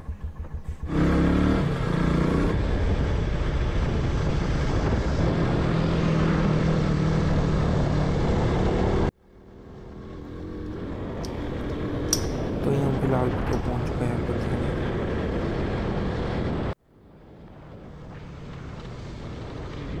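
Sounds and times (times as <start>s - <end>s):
motorcycle engine running: 0.0s - 9.0s, 9.9s - 15.5s
road noise: 0.0s - 20.0s
wind rush on microphone: 2.5s - 6.5s.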